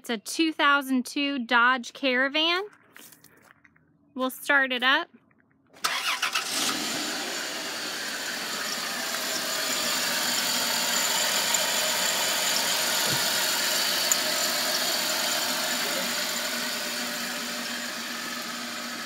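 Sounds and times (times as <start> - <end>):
car engine idling: 5.8 - 19.0.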